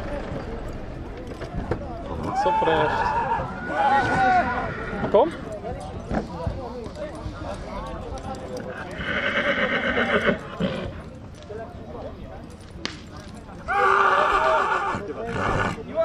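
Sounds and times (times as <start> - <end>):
horse whinnying: 2.3 - 5.4, 8.9 - 10.9, 13.7 - 15.8.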